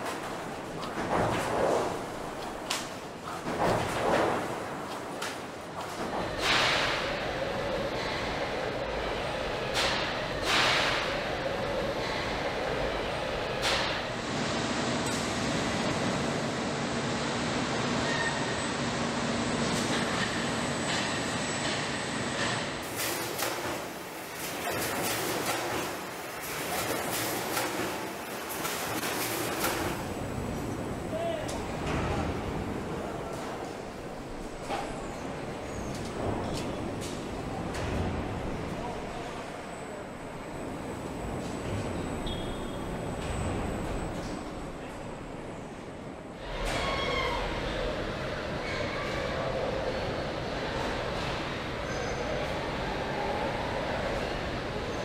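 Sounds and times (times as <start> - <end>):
factory machinery din: 0.0 - 45.0
stamping press machine noise: 19.6 - 32.7.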